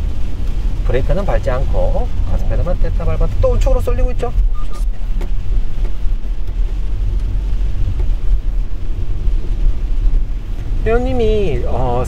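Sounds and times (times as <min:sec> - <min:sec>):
engine and tyres rumbling: 0:00.0 - 0:12.0.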